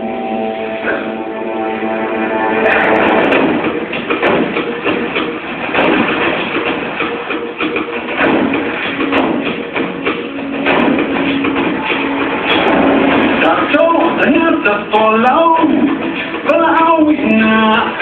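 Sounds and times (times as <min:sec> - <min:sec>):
held low note: 0:00.0 - 0:04.1
film soundtrack music: 0:00.0 - 0:18.0.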